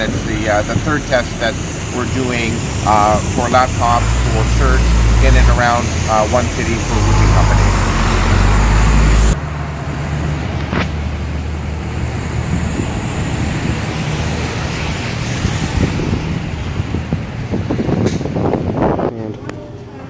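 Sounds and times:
tyres hissing on wet pavement: 0:00.0 - 0:09.4, 0:11.6 - 0:16.7.

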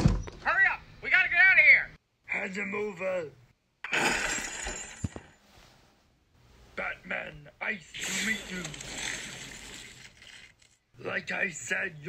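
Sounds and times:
glass breaking crash: 0:03.9 - 0:05.3, 0:08.0 - 0:10.7
person speaking: 0:06.8 - 0:09.1.

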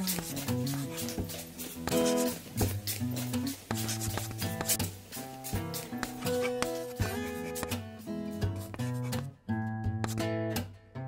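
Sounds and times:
plucked notes background music: 0:00.0 - 0:11.0.

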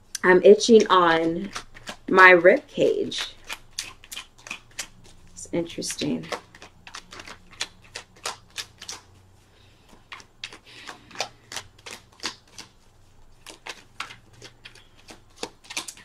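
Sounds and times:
cards being shuffled: 0:00.6 - 0:16.0.

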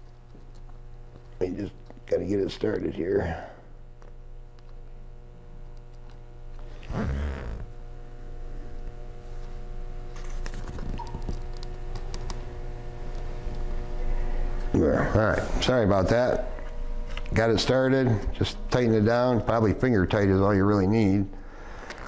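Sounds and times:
steady hum: 0:00.0 - 0:22.0.

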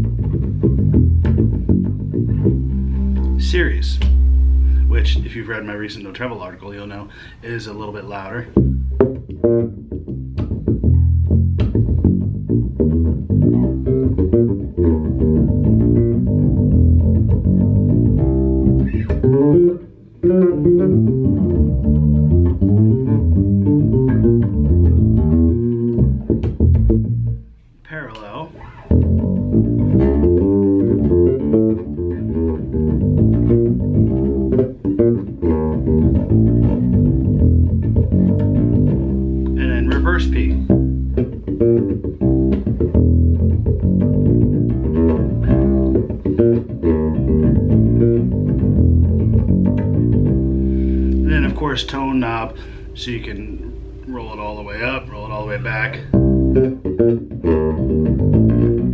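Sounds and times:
electric bass plucked notes: 0:00.0 - 0:58.9.

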